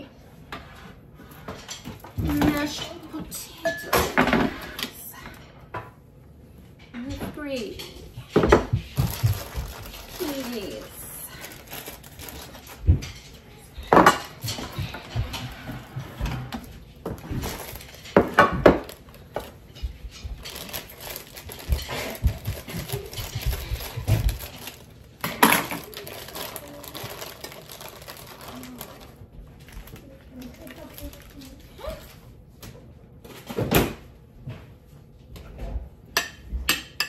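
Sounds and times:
dishes clattering on counter: 0.5s - 4.9s, 6.8s - 10.0s, 12.6s - 25.9s, 35.4s - 37.0s
plastic bag handled: 8.9s - 13.1s, 17.1s - 32.2s.

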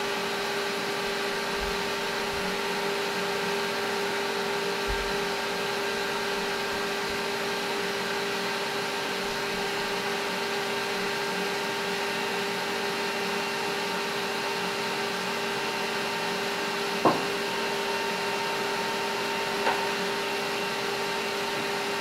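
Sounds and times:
stand mixer motor humming: 0.0s - 22.0s.

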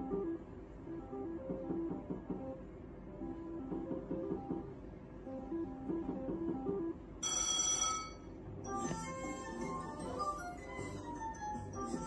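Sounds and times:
slot machine win melody: 5.6s - 12.0s
slot machine bell-like chime: 7.2s - 12.0s.

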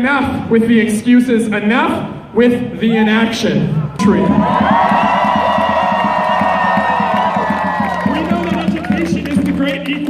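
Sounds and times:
crowd cheering and whooping: 4.0s - 9.0s.

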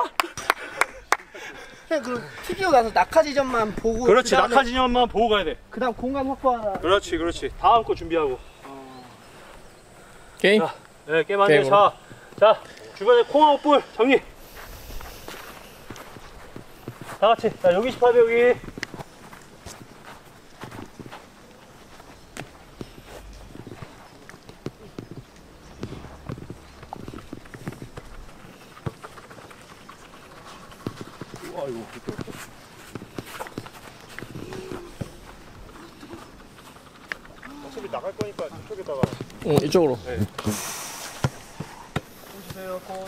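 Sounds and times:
footsteps on artificial turf: 14.4s - 43.0s.

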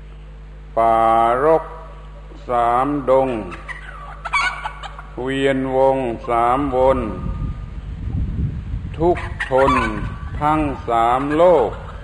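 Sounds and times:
man reciting verse in sing-song: 0.7s - 3.7s, 5.2s - 7.5s, 9.0s - 12.0s
low rumble: 6.5s - 9.2s.

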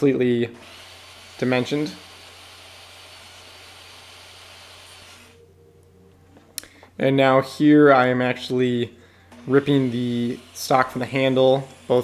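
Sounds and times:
table saw whirring: 0.0s - 5.4s, 9.3s - 12.0s.

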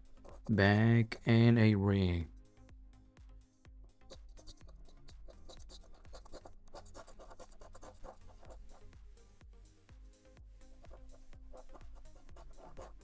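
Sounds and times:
electronic background music: 0.0s - 13.0s
coin scratching lottery ticket: 4.4s - 8.6s, 11.5s - 13.0s.

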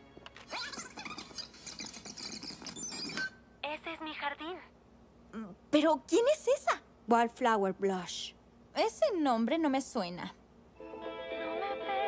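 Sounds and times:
soft background music: 0.0s - 0.6s
squeaky high-pitched chattering voices: 0.5s - 3.4s.

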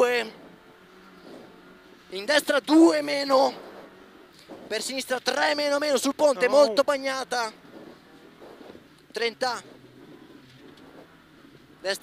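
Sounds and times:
car engine drone inside cabin: 0.0s - 12.0s
road noise: 0.0s - 12.0s.

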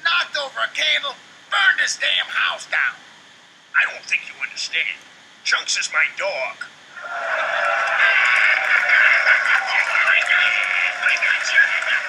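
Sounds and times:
loud laughter: 7.0s - 12.0s.

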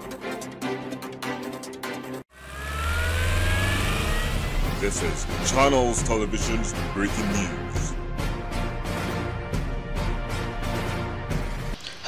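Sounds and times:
news theme music: 0.0s - 11.6s.

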